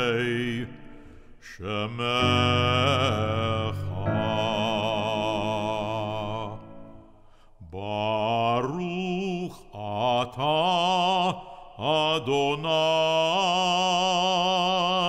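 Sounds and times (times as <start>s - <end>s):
man chanting: 0.0s - 0.8s, 1.4s - 6.6s, 7.6s - 15.0s.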